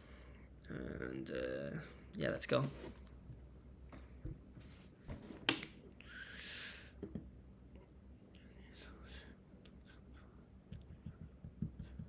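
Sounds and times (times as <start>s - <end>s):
faint whispering: 8.2s - 10.6s.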